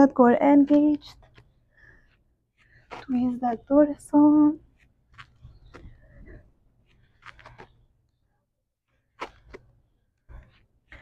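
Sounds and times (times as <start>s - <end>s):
woman breathing quickly: 1.6s - 3.0s, 5.8s - 7.0s.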